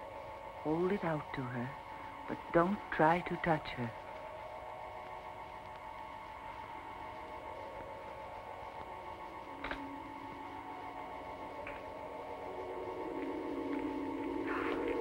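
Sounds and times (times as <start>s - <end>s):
eerie held-tone music: 0.0s - 15.0s.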